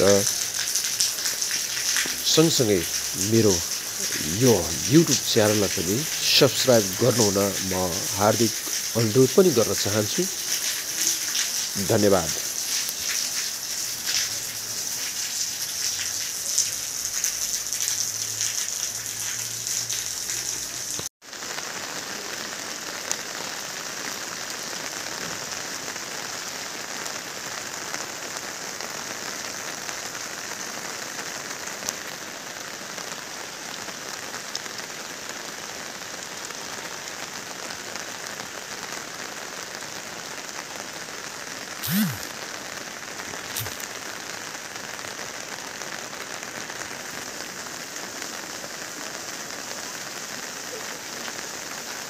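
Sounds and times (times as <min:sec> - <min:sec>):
heavy rain falling: 0:00.0 - 0:52.0.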